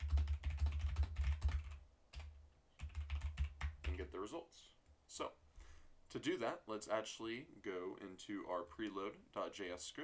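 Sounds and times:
computer keyboard typing: 0.0 - 4.1.

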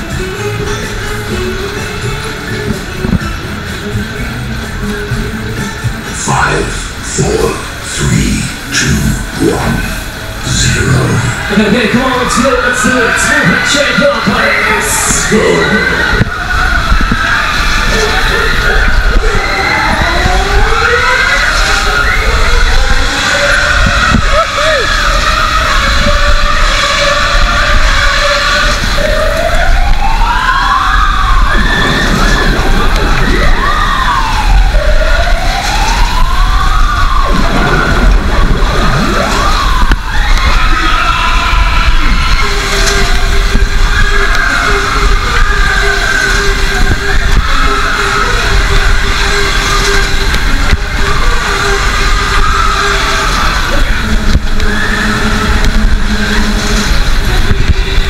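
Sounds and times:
fairground ride rumble: 0.0 - 58.0
wailing siren over speakers: 10.5 - 58.0.

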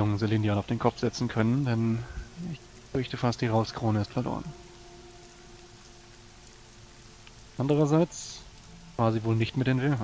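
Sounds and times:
faint steady hiss: 0.0 - 10.0
low steady hum: 0.0 - 10.0.

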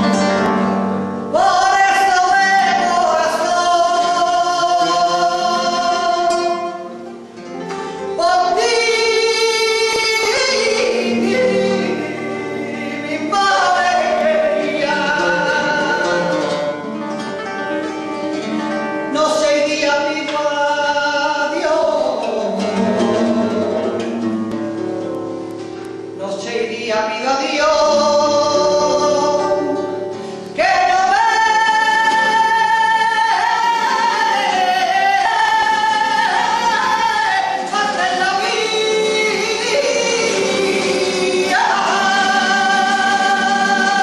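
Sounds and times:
flamenco guitar: 0.0 - 44.0
woman singing flamenco: 0.0 - 44.0.

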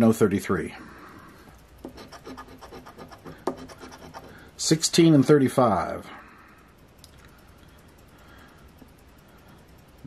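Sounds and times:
coin scratching lottery ticket: 1.8 - 4.4.

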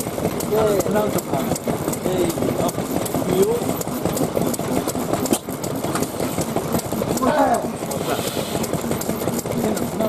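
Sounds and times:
old engines clattering: 0.0 - 10.0.

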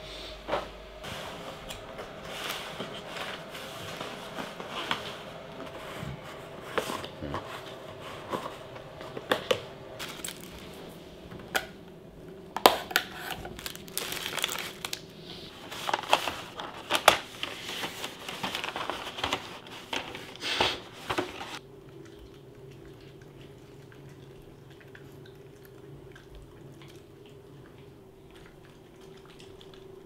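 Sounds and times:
faint steady hum: 0.0 - 30.0
plastic and paper containers crinkling: 1.1 - 10.9, 12.6 - 21.6.

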